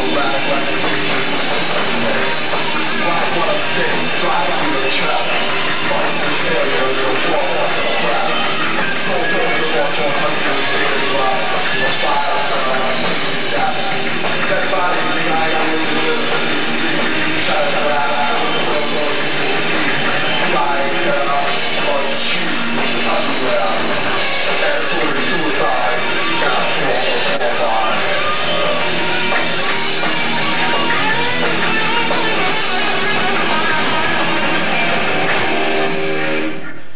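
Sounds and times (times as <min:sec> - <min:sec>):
drum kit pounding: 0:00.0 - 0:36.4
distorted electric guitars: 0:00.0 - 0:36.9.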